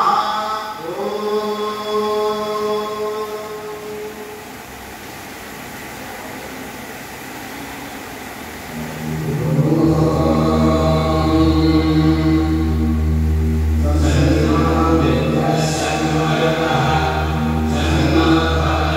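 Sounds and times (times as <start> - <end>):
man chanting: 0.0 - 4.3, 9.2 - 18.9.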